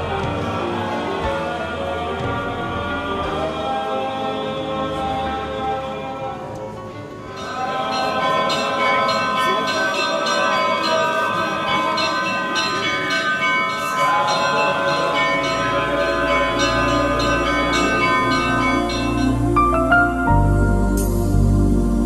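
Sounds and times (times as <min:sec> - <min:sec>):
church bells ringing: 0:07.1 - 0:21.2
low steady drone: 0:13.9 - 0:22.0.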